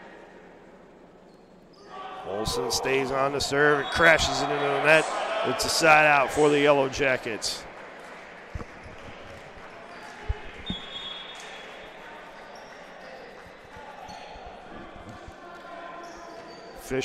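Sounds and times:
murmur of voices: 1.9s - 17.0s.

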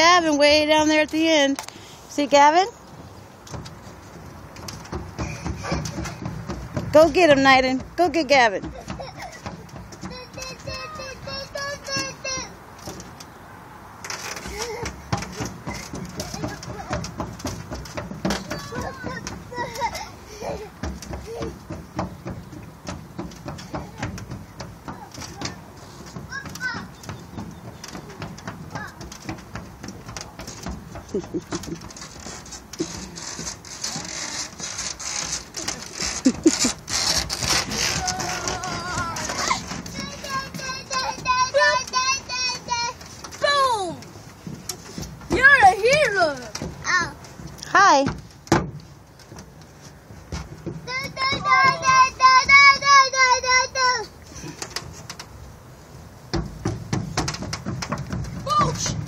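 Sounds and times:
footsteps on metal footbridge: 0.0s - 59.0s.

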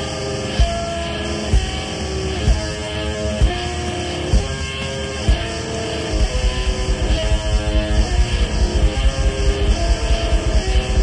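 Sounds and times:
distorted electric guitar chords: 0.0s - 11.0s
heavy low beat: 3.4s - 11.0s.

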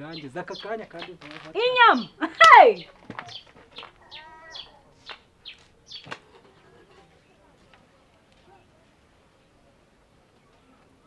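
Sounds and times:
small birds chirping: 0.0s - 7.5s
pitched bird call: 0.1s - 6.1s.

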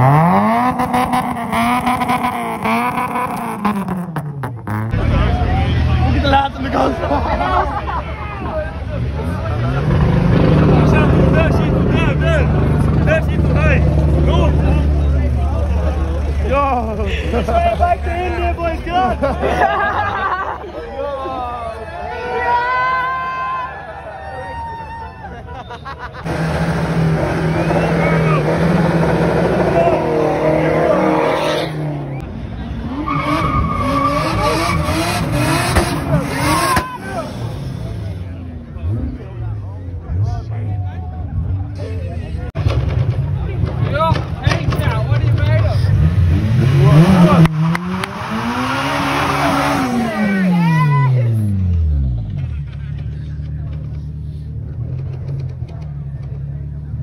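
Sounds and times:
car engine revving: 0.0s - 7.0s, 8.8s - 16.7s, 26.3s - 40.6s, 42.6s - 57.0s
crowd chatter and shouts: 4.9s - 26.0s, 27.3s - 46.1s, 49.1s - 57.0s
people shouting: 36.4s - 37.4s, 49.5s - 51.4s.

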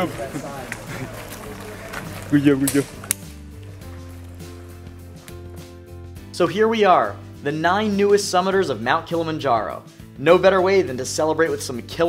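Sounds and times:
group of people talking outdoors: 0.0s - 6.2s
music with held notes: 0.0s - 8.2s.

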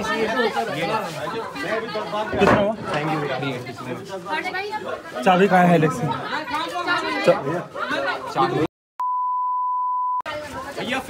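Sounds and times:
censor bleep: 9.0s - 10.3s.

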